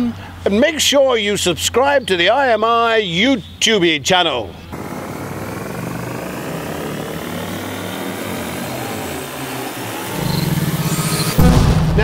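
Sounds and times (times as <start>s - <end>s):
rapid low pulsing throb: 4.7s - 12.0s
rising whooshing sweep: 4.8s - 11.6s
loud hit: 4.8s - 12.0s.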